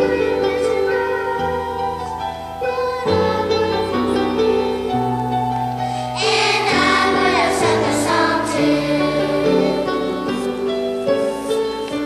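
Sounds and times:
children's choir singing: 0.0s - 12.0s
keyboard chords: 0.0s - 12.0s.

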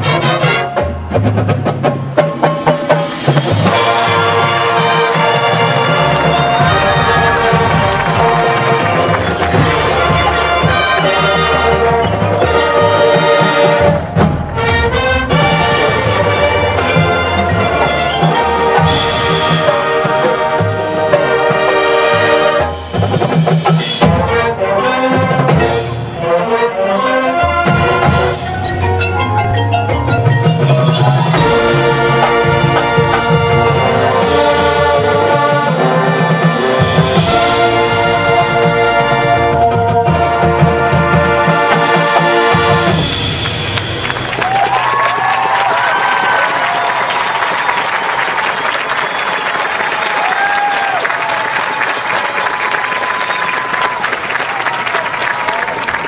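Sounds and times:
drums and percussion: 0.0s - 56.0s
marching band brass chords: 0.0s - 56.0s.

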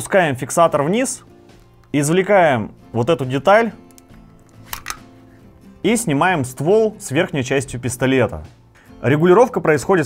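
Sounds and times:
quiet background music: 0.0s - 10.0s
light sharp pistol part clicks: 3.8s - 5.1s.

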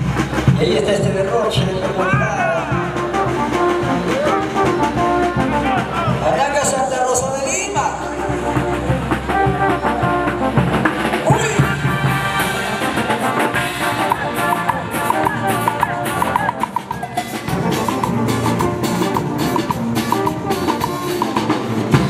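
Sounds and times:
brass band playing dance tune: 0.0s - 22.0s
drum kit dance beat: 11.2s - 22.0s.

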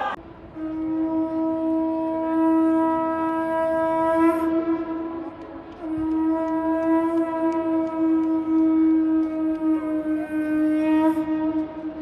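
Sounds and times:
horn-like instrument long note: 0.0s - 12.0s.

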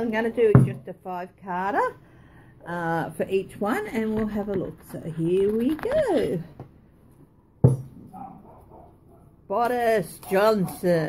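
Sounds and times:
hard object knocking on tabletop: 0.5s - 0.8s, 7.6s - 8.0s.

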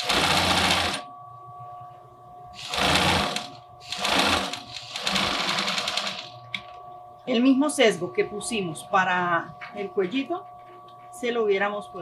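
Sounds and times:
sewing machine stitching: 0.0s - 1.0s, 2.6s - 6.3s.

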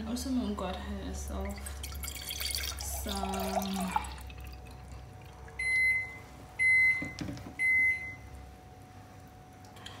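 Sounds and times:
appliance beeps: 5.6s - 8.4s.

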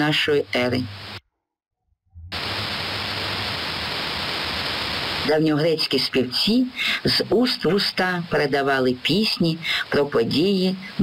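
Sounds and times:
steady hiss with low hum: 0.0s - 1.2s, 2.3s - 11.0s.

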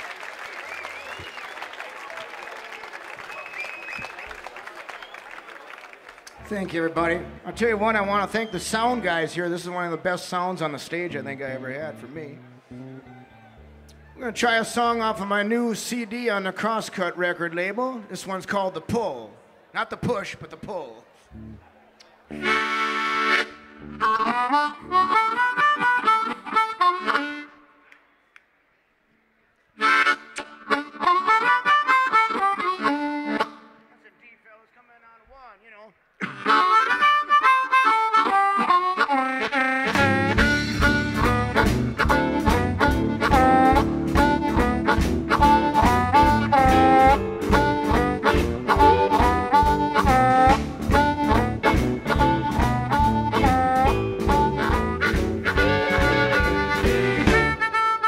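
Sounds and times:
blues harmonica playing: 6.4s - 9.5s, 11.0s - 15.2s, 22.3s - 27.9s, 29.8s - 34.0s, 36.2s - 58.0s
band playing drums bass guitar: 39.8s - 57.8s.

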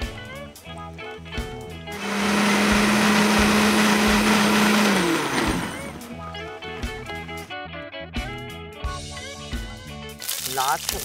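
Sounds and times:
blender running: 1.9s - 7.2s.

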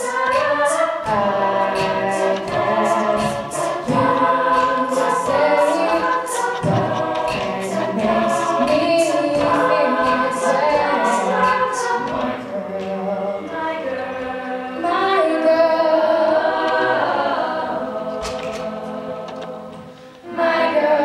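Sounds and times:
beatboxing hi-hat strokes: 0.0s - 13.1s
group singing in harmony: 0.0s - 21.0s.

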